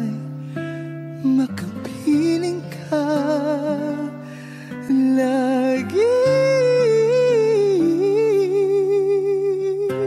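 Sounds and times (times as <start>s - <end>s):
person singing a ballad with vibrato: 0.0s - 10.0s.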